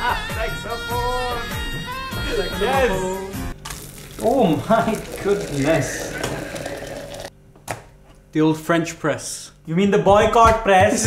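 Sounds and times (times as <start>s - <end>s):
hot water pouring into glass: 3.6s - 7.3s.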